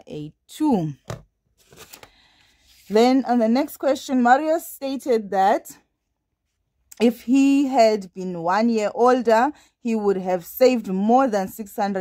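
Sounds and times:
paper rustling on desk: 1.5 - 3.1.

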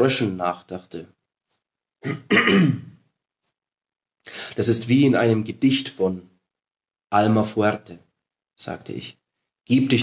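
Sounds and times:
man clearing his throat: 2.0 - 3.0.

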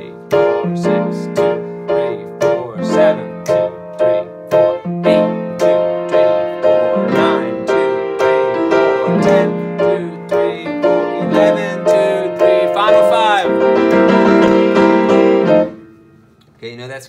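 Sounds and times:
piano playing a scale: 0.0 - 16.4.

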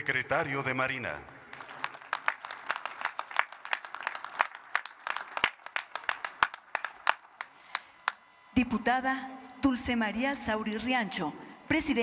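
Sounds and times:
small audience clapping: 1.2 - 8.2.

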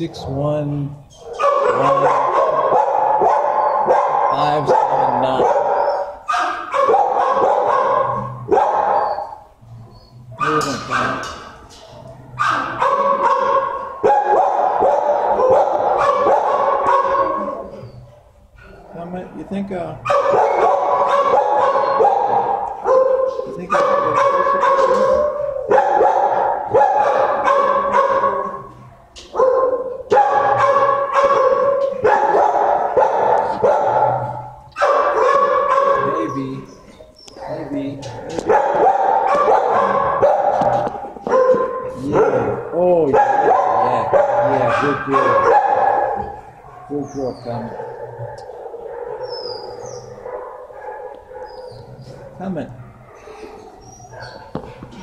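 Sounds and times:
dogs barking: 0.0 - 55.0.

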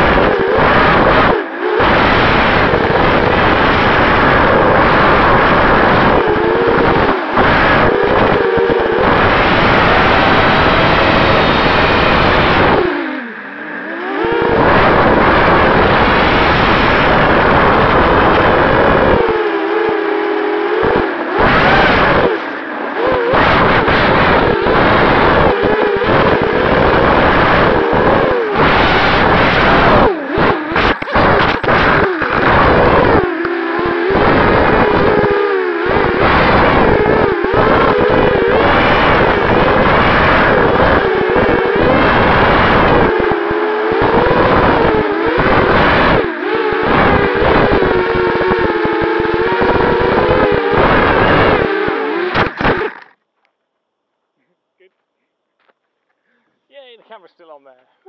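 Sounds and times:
wind noise: 0.0 - 53.1
drone motors whining: 0.0 - 53.2.

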